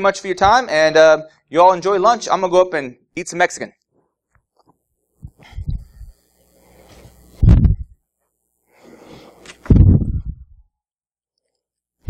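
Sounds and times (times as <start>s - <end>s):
microphone handling thumps: 5.2s - 6.2s, 6.8s - 8.0s, 9.5s - 10.6s.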